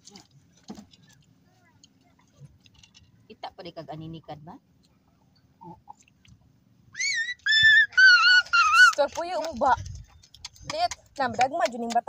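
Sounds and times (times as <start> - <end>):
animal's high-pitched wavering calls: 6.9 - 9.0.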